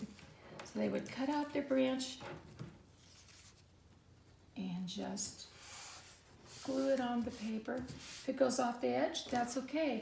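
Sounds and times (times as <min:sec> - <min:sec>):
woman speaking: 0:00.7 - 0:02.2, 0:04.6 - 0:05.4, 0:06.6 - 0:10.0
paper rustling: 0:02.6 - 0:03.8, 0:05.6 - 0:08.3.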